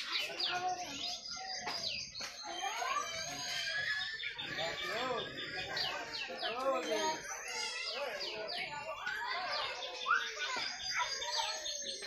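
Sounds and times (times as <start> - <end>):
birds chirping and calling: 0.0 - 12.0
lower arched bird calls: 0.0 - 12.0.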